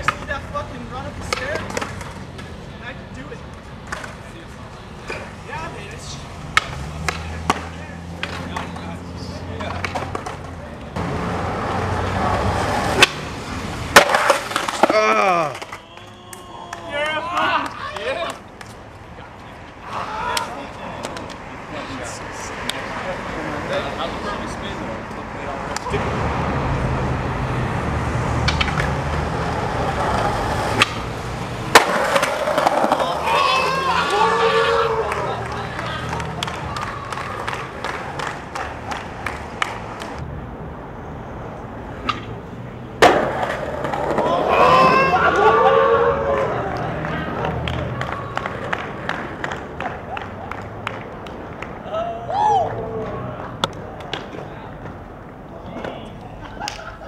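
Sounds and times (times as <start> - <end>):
skateboard clacks: 0.0 - 0.4, 1.2 - 2.6, 3.5 - 4.3, 6.5 - 11.0, 11.6 - 13.3, 13.9 - 18.8, 19.4 - 21.5, 28.4 - 40.2, 43.0 - 45.4, 46.2 - 51.9, 53.0 - 57.0
skateboard wheels rolling on concrete: 0.0 - 57.0
voices shouting: 14.8 - 18.5, 19.8 - 21.0, 32.3 - 37.9, 44.0 - 48.8, 51.8 - 53.6.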